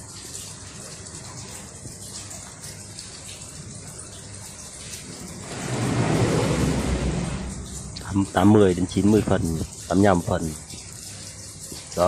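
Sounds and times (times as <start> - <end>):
water lapping against quay wall: 0.0 - 12.0.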